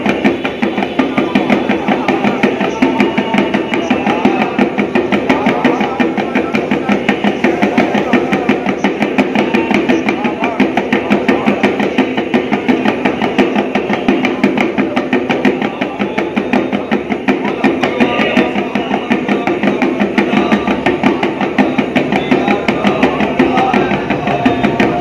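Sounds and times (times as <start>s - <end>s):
steady ringing: 0.0s - 25.0s
temple percussion fast beat: 0.0s - 25.0s.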